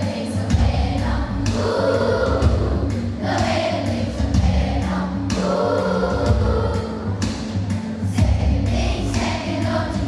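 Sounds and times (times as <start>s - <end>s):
children's choir singing: 0.0s - 10.0s
percussive beats: 0.0s - 10.0s
deep bass line: 0.5s - 1.6s, 2.3s - 3.4s, 4.0s - 7.3s, 8.2s - 10.0s.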